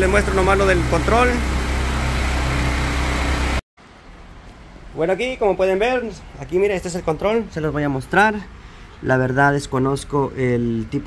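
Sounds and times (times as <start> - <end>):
machine humming and hissing: 0.0 - 3.6.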